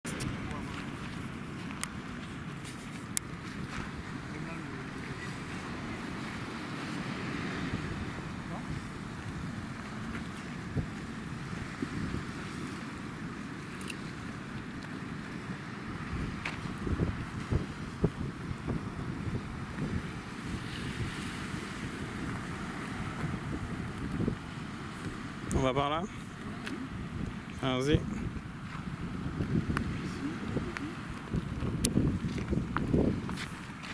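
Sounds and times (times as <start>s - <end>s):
wind buffeting microphone: 0.0s - 33.9s
sea surf: 0.1s - 33.9s.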